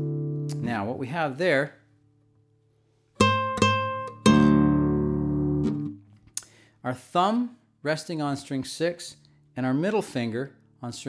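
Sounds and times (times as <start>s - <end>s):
flamenco guitar notes and chord: 0.0s - 0.7s, 3.2s - 6.1s.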